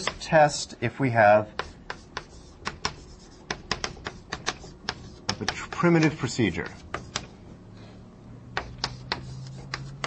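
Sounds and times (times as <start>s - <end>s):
chalk tapping on blackboard: 0.0s - 0.3s, 1.5s - 7.4s, 8.5s - 10.0s
man speaking: 0.0s - 1.5s, 5.4s - 6.8s.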